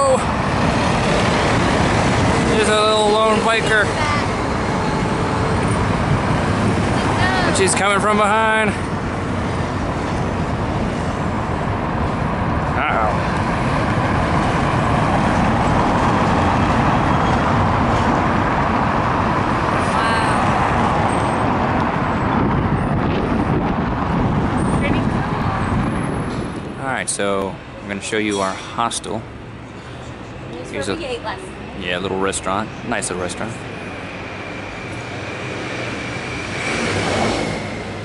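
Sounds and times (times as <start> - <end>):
road traffic passing: 0.0 - 38.0.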